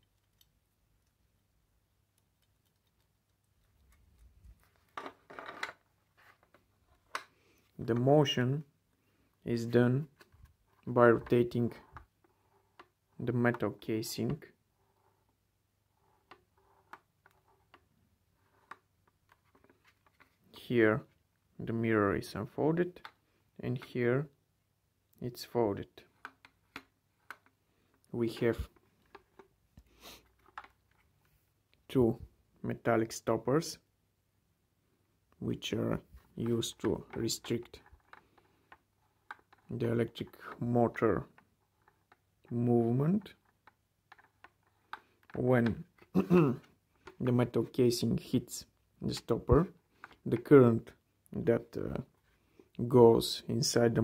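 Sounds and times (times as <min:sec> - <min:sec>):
faint plastic and metal clicks: 0:00.0 - 0:08.1, 0:10.1 - 0:15.3, 0:16.0 - 0:20.4, 0:22.9 - 0:24.0, 0:26.0 - 0:31.8, 0:36.0 - 0:47.3, 0:49.9 - 0:52.8
plastic scraping and rattling: 0:02.4 - 0:07.3, 0:30.2 - 0:31.4.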